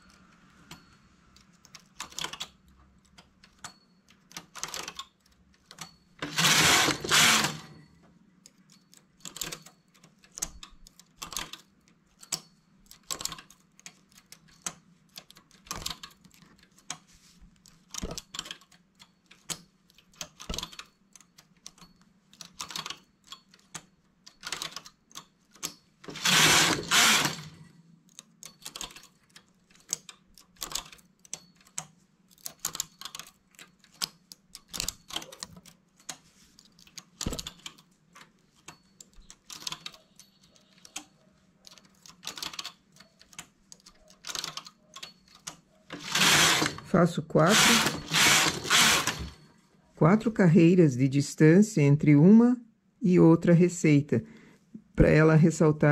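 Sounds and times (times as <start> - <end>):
knitting machine carriage rasp: 5.7 - 7.8, 25.5 - 27.7, 32.4 - 49.4.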